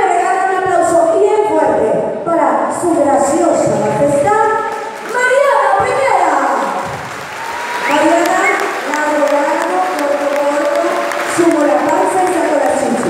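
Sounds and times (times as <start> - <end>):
audience applause: 4.6 - 13.0.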